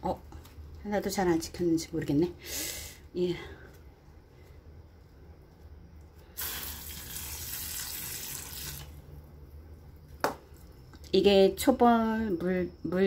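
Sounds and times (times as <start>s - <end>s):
shower head spraying water on soil: 6.4s - 8.9s.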